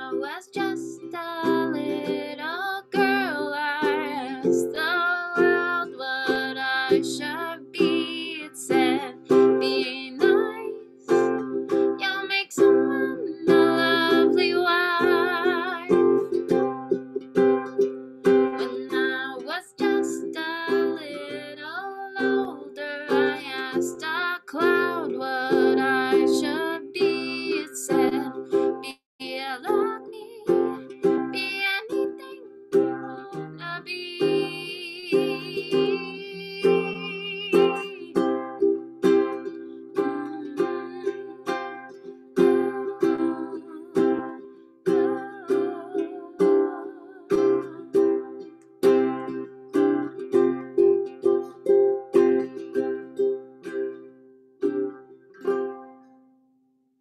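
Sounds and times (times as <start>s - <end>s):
woman singing with vibrato: 0.0s - 16.3s, 18.4s - 38.5s, 39.4s - 48.5s
strummed ukulele: 0.0s - 56.6s.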